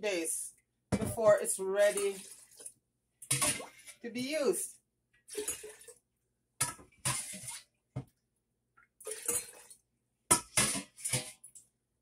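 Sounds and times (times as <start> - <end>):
liquid splashing into a jar: 5.3 - 6.0.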